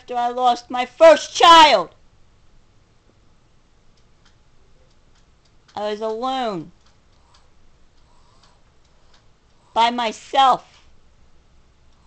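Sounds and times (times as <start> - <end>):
faint ticks: 3.9 - 9.8.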